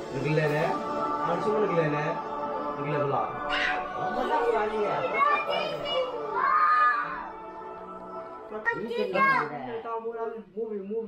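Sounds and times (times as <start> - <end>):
children talking and calling out: 3.4 - 4.0, 5.0 - 7.3.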